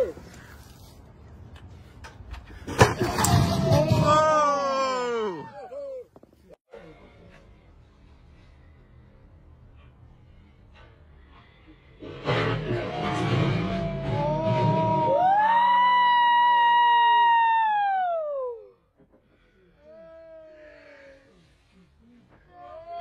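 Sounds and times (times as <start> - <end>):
high-pitched screams: 12.2 - 18.7
falling cry: 12.8 - 18.6.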